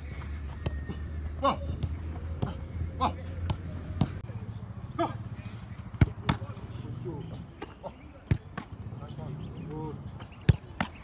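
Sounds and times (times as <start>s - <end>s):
football kicked and caught thuds: 0.6s - 2.6s, 3.4s - 4.2s, 5.9s - 6.6s, 7.6s - 8.8s, 10.2s - 11.0s.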